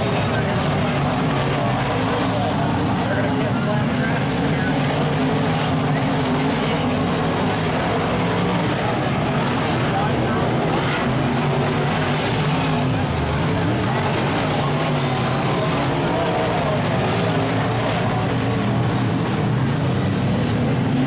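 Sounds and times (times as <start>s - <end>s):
race car engines droning: 0.0s - 21.0s.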